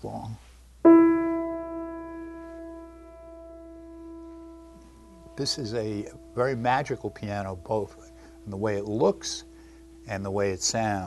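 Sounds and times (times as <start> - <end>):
piano note ringing: 0.8 - 11.0.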